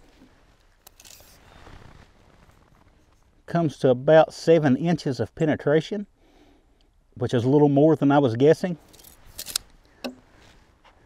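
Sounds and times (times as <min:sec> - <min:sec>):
tape measure click and rasp: 0:08.9 - 0:09.7.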